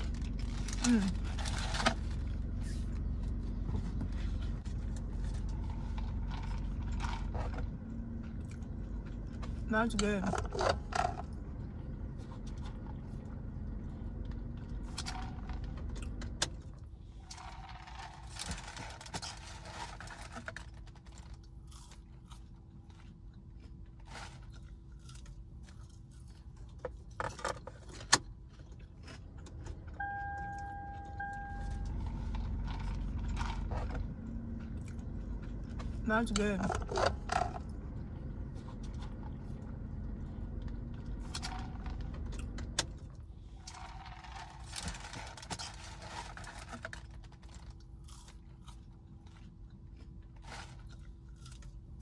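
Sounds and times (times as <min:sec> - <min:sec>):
low rumble: 0:00.0 - 0:18.8, 0:29.2 - 0:45.4
short steady tone: 0:30.0 - 0:32.6.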